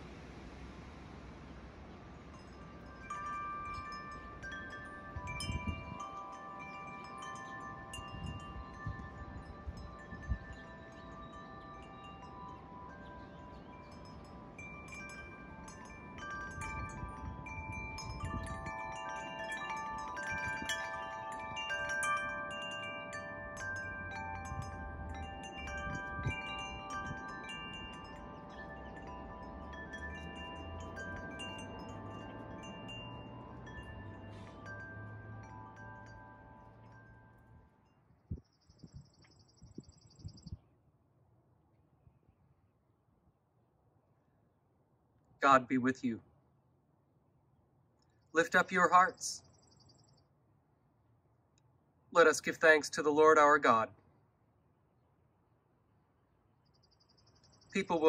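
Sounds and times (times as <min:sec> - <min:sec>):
wind rumbling on microphone: 0:00.0 - 0:40.7
metal wind chime ringing: 0:02.3 - 0:38.2.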